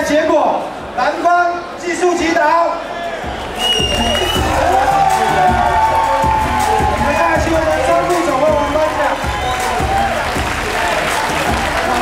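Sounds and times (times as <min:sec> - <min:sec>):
music with thumping beat: 0:03.3 - 0:12.0
audience applauding: 0:03.6 - 0:12.0.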